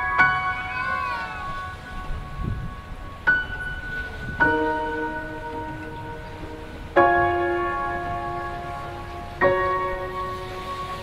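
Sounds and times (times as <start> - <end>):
slow calm background music: 0.0 - 11.0.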